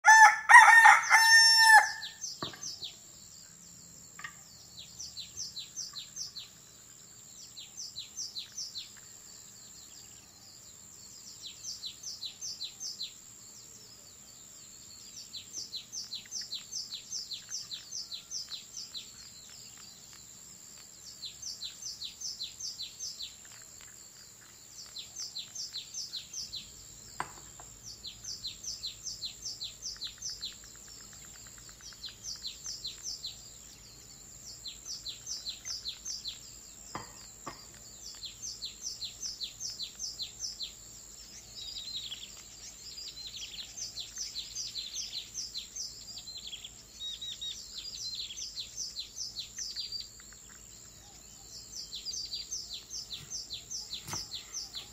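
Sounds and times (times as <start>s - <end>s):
songbird singing: 0.0s - 54.9s.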